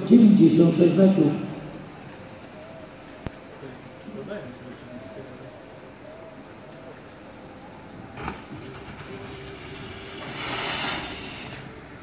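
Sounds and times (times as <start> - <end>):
skis sliding on plastic mats: 8.6 - 11.8.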